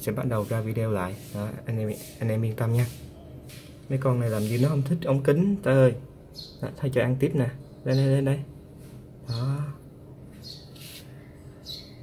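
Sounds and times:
faint steady hum: 0.0s - 12.0s
bird chirping: 6.2s - 8.4s, 9.2s - 12.0s.

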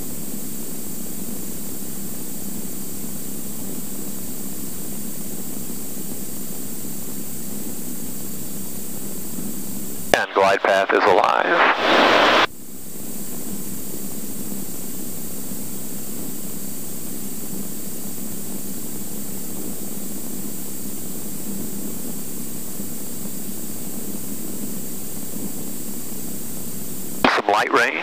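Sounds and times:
airplane engine drone in cockpit: 10.1s - 12.5s, 27.3s - 28.0s.

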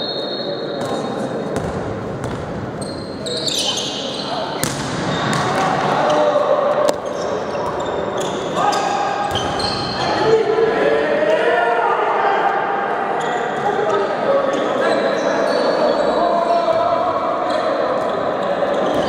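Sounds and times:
handball bouncing on court floor: 0.8s - 3.0s, 4.6s - 5.9s, 9.2s - 10.0s.

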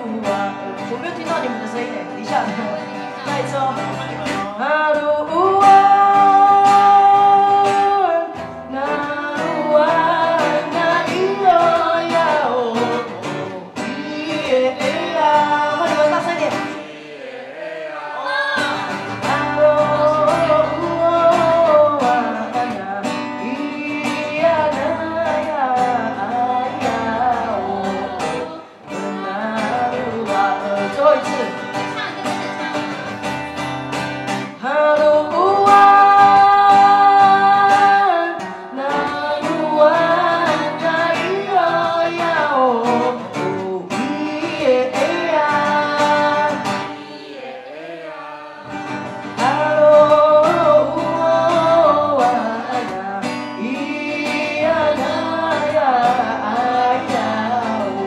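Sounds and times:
voices singing: 0.0s - 33.2s, 34.6s - 58.0s
acoustic guitar: 0.0s - 58.0s.

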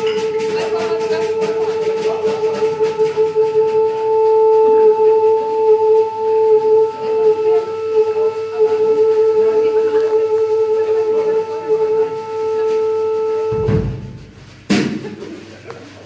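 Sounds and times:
jazz keyboard holding a note: 0.0s - 14.6s
drum cymbal strokes: 0.0s - 14.7s.

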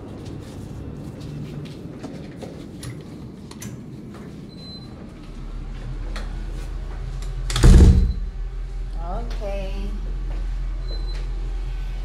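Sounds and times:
steady low hum: 0.0s - 12.0s
loud short thump: 7.5s - 8.3s.

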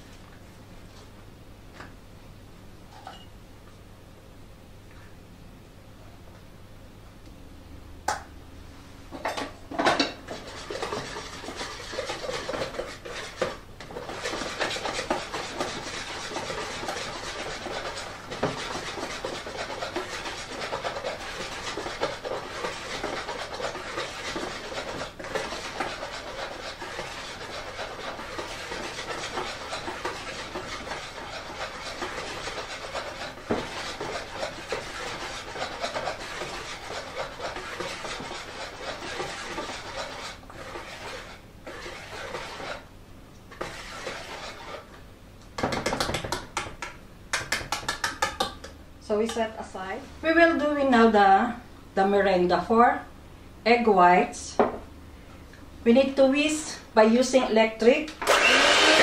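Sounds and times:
utensil scraping a bowl: 10.2s - 42.9s, 43.5s - 45.0s
utensil knocking on bowl: 45.6s - 49.5s.

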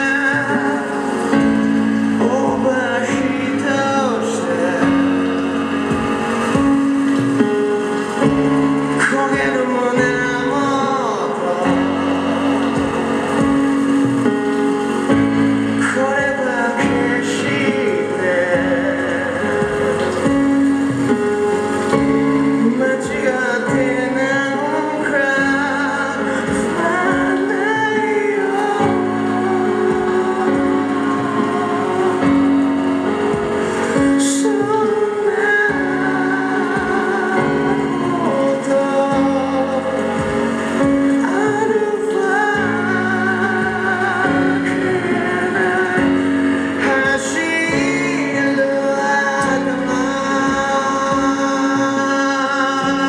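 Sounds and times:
keyboard chords: 0.0s - 53.0s
low bass notes gliding: 0.0s - 53.0s
person singing: 0.0s - 53.0s.

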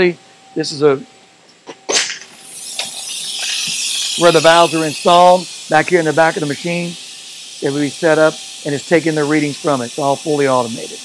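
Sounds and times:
steady high hiss: 0.0s - 11.0s.

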